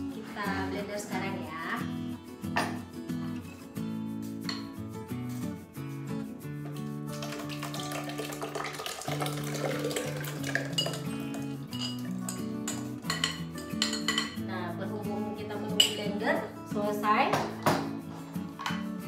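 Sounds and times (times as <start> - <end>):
background music: 0.0 - 19.0
batter pouring: 6.6 - 13.2.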